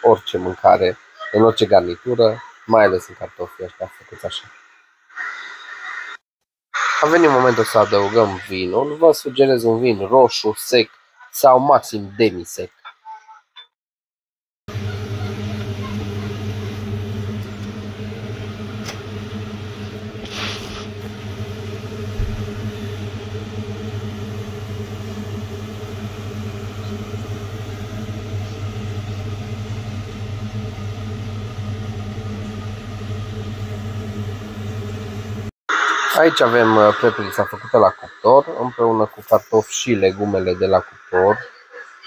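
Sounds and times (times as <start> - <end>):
oven fan humming: 0.0 - 4.3, 14.7 - 35.5, 36.2 - 41.4
brief rush of noise: 20.2 - 21.0, 35.7 - 37.7.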